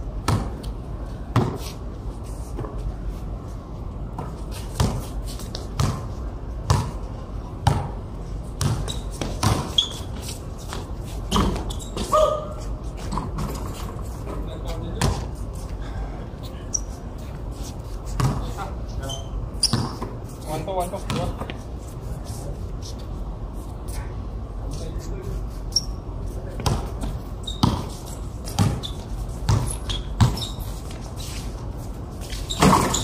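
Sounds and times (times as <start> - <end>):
basketball bouncing on concrete: 0.2 - 0.7, 1.3 - 1.6, 4.2 - 7.0, 7.6 - 8.0, 8.6 - 9.9, 10.7 - 12.1, 14.9 - 15.3, 18.1 - 18.6, 19.6 - 20.2, 21.0 - 21.6, 26.6 - 31.0.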